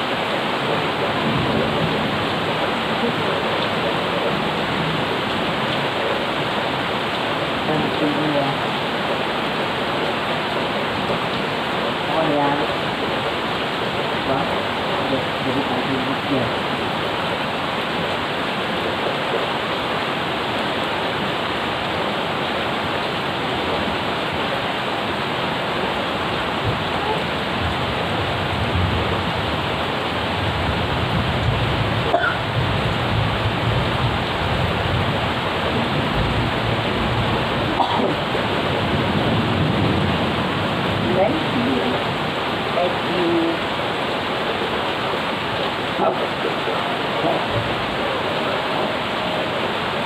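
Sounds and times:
heavy rain pouring: 0:00.0 - 0:50.0.

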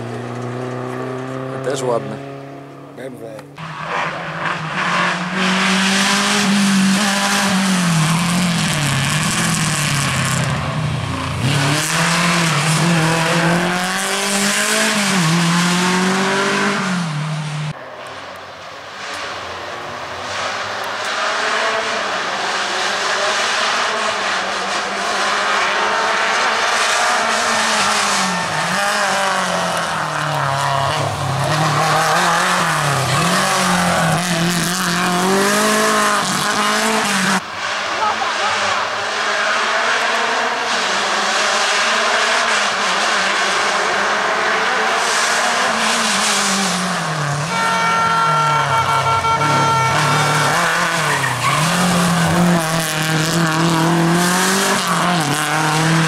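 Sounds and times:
car engine revving hard: 0:00.0 - 0:17.8, 0:20.0 - 0:56.0.

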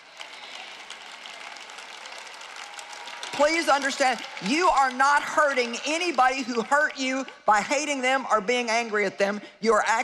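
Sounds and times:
audience applauding: 0:00.0 - 0:07.1.

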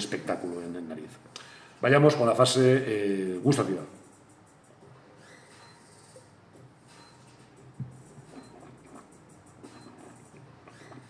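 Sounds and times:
sipping and slurping wine: 0:07.6 - 0:11.0.

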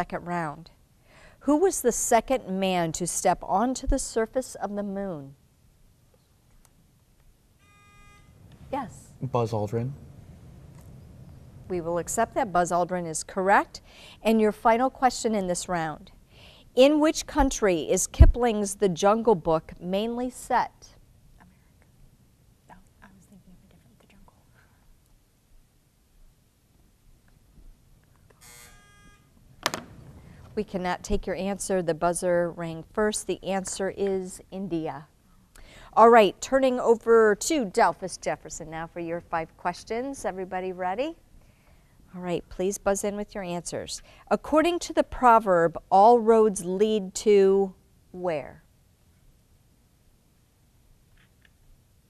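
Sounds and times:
quiz show buzzer tone: 0:07.6 - 0:08.4, 0:28.4 - 0:29.4.

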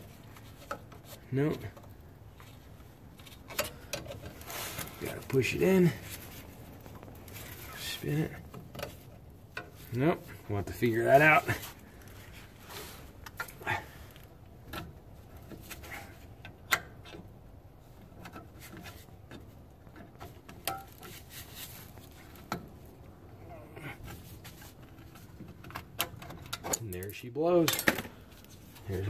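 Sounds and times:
small metallic clicks and scrapes: 0:00.0 - 0:11.0, 0:11.6 - 0:23.0, 0:24.0 - 0:29.0.

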